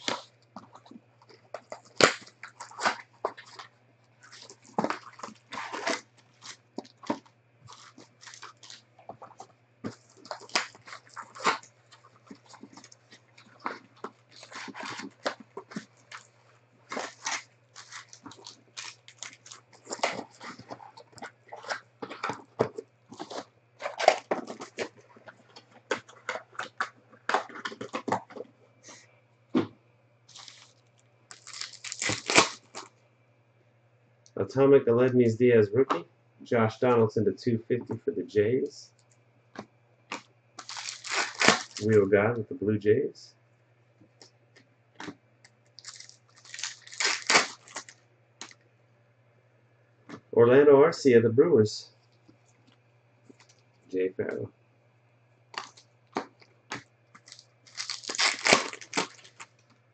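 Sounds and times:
cellophane crinkling and tearing: 0.0 - 29.0, 30.3 - 32.9, 40.1 - 42.0, 45.7 - 48.6, 55.6 - 59.8
faint low hum: 0.0 - 59.9.

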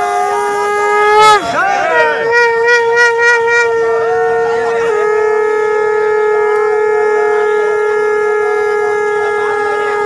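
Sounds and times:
conch shell blown: 0.0 - 10.0.

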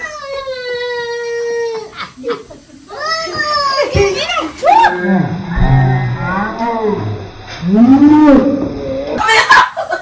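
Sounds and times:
people groaning and yelling: 2.9 - 9.8.

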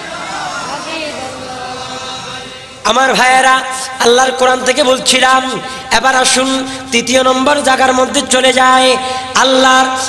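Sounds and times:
man chanting: 2.8 - 10.0.

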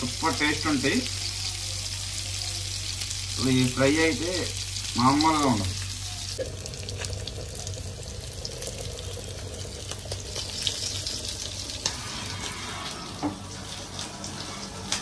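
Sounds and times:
fish sizzling in oil: 0.0 - 15.0.

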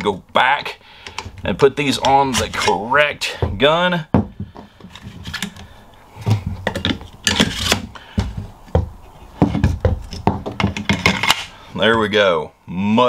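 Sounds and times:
rifle parts scraping: 1.0 - 2.9, 4.8 - 8.4, 9.0 - 11.6
clicks and knocks on wooden table: 8.2 - 11.4.

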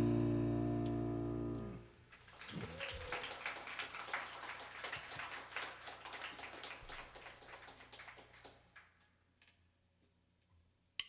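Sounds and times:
audience clapping: 2.1 - 9.0.

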